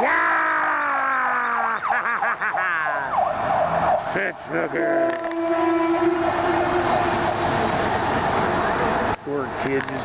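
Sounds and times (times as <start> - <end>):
horn steady note: 4.8 - 7.5
loud steady rushing noise: 4.8 - 9.2.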